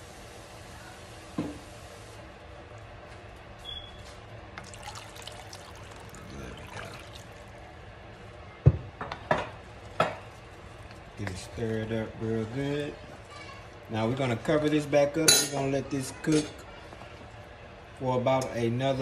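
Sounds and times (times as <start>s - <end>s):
liquid pouring into a pot: 4.6s - 8.1s.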